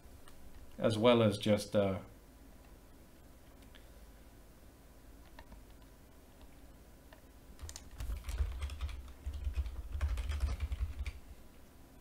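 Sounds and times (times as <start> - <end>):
typing on keyboard: 7.6 - 11.2.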